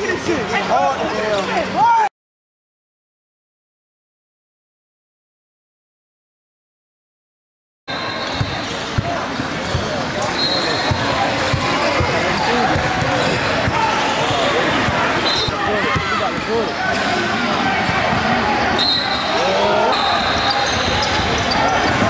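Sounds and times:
crowd chatter: 0.0 - 2.1, 7.9 - 22.0.

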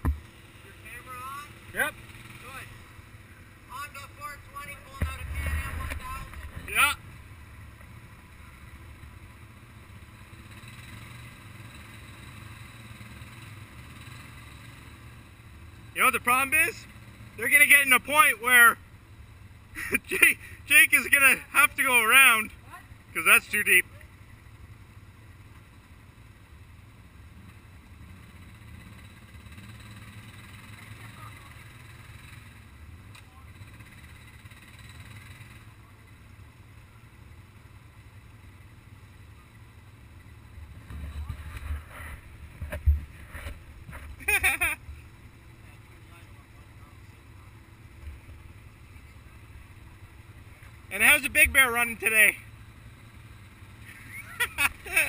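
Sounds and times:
atv engines idling: 0.0 - 55.0.

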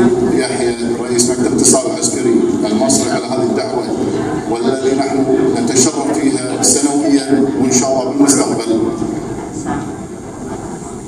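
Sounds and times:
reception hall room noise: 0.0 - 11.0.

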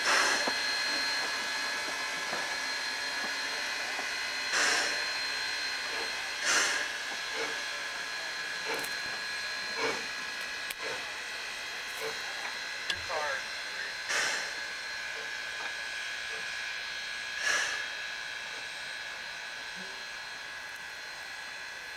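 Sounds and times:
steam hissing: 0.0 - 21.9
steam locomotive chuffing: 0.0 - 21.9.

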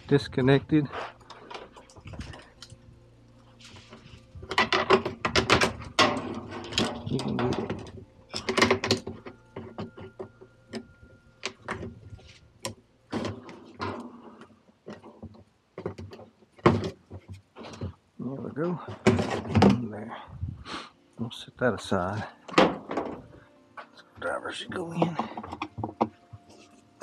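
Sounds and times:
steady low hum: 0.0 - 14.7.

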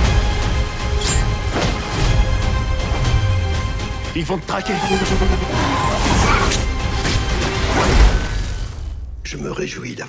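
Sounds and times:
trailer music: 0.0 - 9.8.

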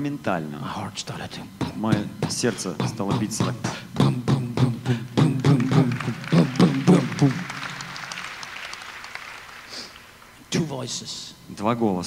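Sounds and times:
man imitating heartbeat: 1.1 - 7.9.

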